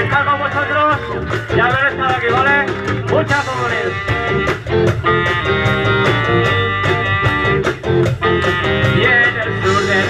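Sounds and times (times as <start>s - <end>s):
electric guitars: 0.0s - 10.0s
steady drum beat: 0.0s - 10.0s.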